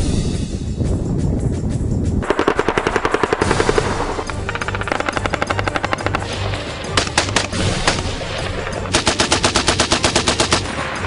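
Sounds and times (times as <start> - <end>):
automatic machine-gun fire: 2.2 - 6.3, 8.9 - 10.7.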